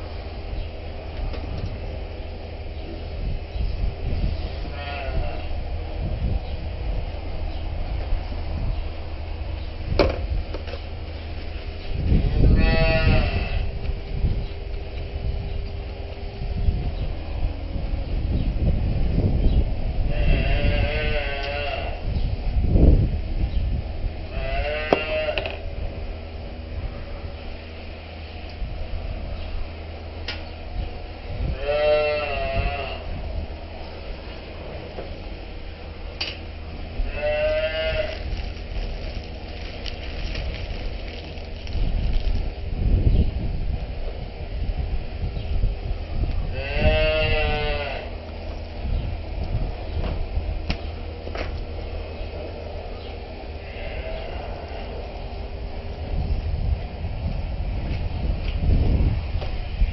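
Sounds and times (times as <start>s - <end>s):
low mechanical hum: 0.0s - 59.9s
cattle mooing: 20.2s - 22.0s, 24.3s - 25.6s, 31.6s - 33.0s, 46.5s - 48.2s, 53.6s - 55.0s.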